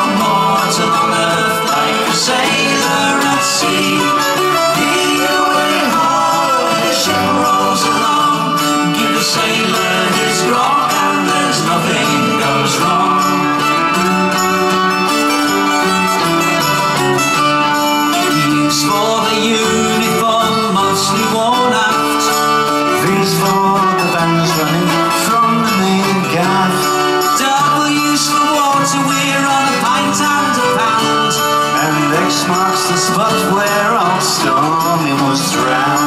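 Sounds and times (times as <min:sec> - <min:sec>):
acoustic guitar: 0:00.0 - 0:36.0
folk-rock band playing live: 0:00.0 - 0:36.0
mandolin: 0:00.0 - 0:36.0.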